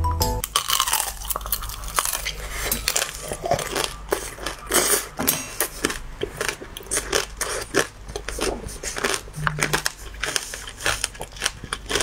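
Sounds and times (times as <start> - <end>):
crunching candied sugar shell: 0.4 - 4.9, 5.9 - 12.0.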